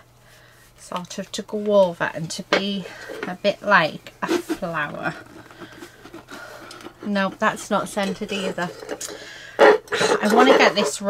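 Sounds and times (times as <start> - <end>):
rustling and handling of resin sheet: 2.6 - 11.0.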